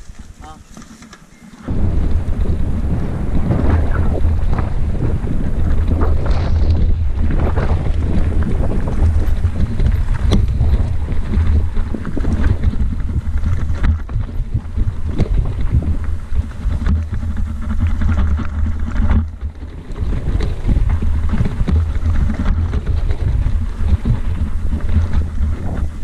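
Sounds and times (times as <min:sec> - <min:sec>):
bike rattling on rough trail: 0:00.0 - 0:26.0
wind buffeting microphone: 0:01.6 - 0:26.0.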